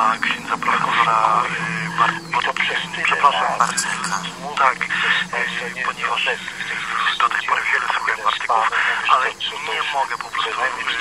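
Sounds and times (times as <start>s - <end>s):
low hum: 0.0s - 8.5s.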